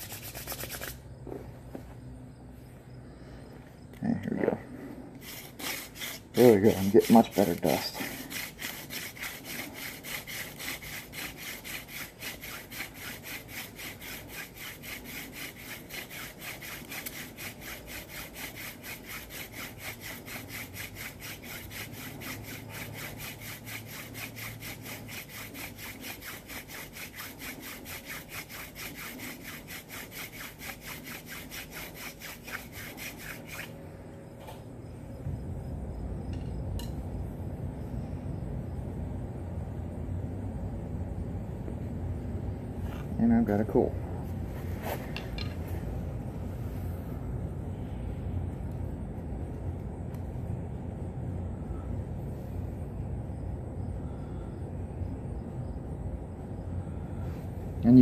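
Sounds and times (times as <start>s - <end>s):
wooden hand drill rasping: 5.2s - 33.8s.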